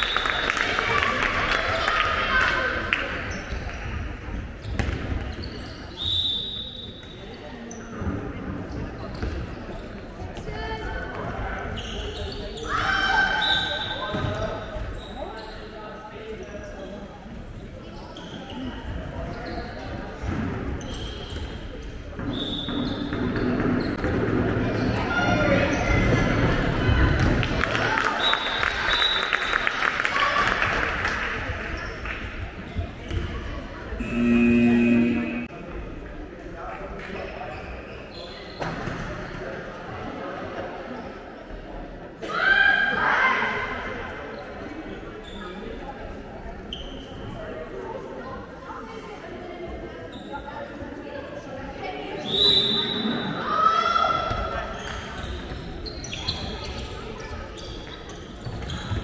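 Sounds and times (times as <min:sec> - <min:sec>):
shoe squeaks: 0:04.6 - 0:08.0, 0:11.7 - 0:12.8, 0:13.4 - 0:15.8, 0:17.9 - 0:20.0, 0:20.8 - 0:21.6, 0:46.7 - 0:47.3, 0:54.8 - 0:59.0.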